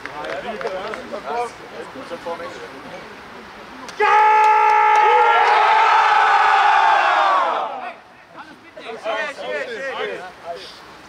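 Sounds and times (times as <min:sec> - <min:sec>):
men shouting together: 0:04.0 - 0:08.0.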